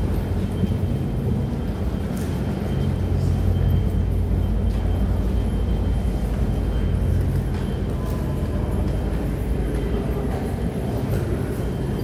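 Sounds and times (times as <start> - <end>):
underpass rumble and hum: 0.0 - 12.0.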